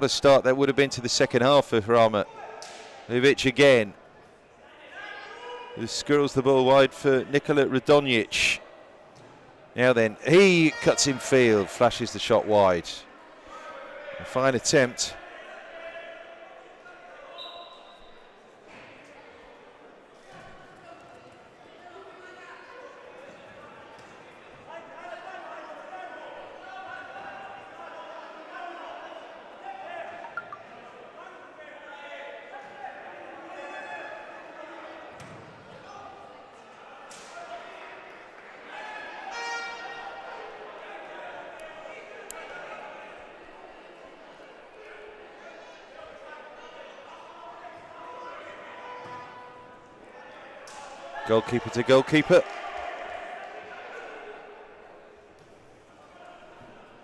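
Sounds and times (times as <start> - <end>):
indistinct shouts echoing in hall: 4.6 - 6.0, 10.1 - 18.0, 35.8 - 57.0.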